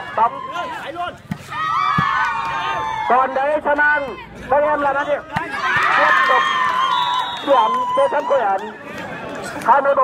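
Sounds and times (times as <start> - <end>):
volleyball hits: 1.2 - 2.7, 5.3 - 6.4.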